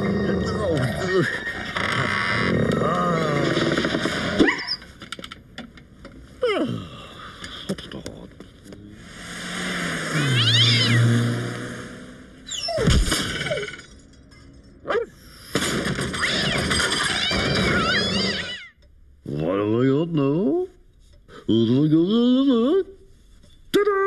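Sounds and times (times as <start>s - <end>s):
cartoon cats yowling and screeching: 0.0s - 1.8s, 10.2s - 11.1s, 16.2s - 18.8s.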